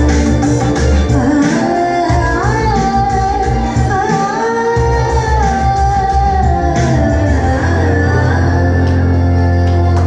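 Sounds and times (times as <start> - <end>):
bass beat: 0.0 - 4.2, 4.8 - 10.0.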